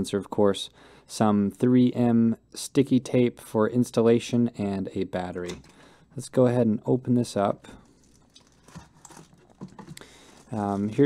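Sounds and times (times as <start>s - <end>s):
plastic wrapping rustling: 7.3s - 11.0s.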